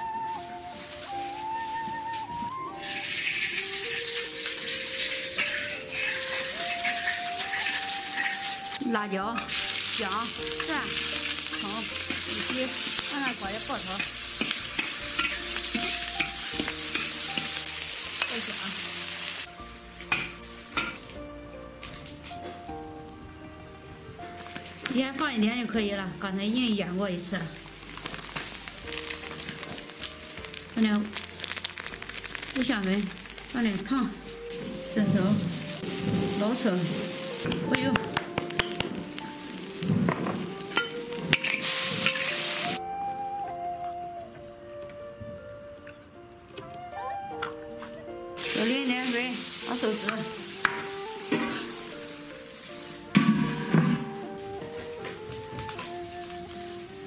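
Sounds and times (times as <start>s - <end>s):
food sizzling in hot oil: 0.0s - 22.3s, 23.9s - 42.8s, 48.4s - 57.0s
metal ladle scraping a wok: 2.7s - 8.8s, 13.8s - 18.4s, 40.2s - 42.8s, 50.0s - 54.1s.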